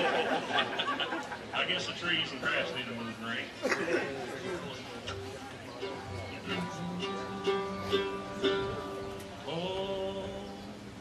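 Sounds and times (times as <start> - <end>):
plucked acoustic string notes: 4.5 - 10.8.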